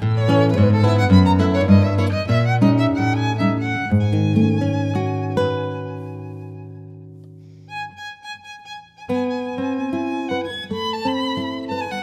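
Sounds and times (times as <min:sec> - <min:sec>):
classical guitar playing: 0:00.0 - 0:12.0
violin playing slow tango: 0:00.0 - 0:12.0.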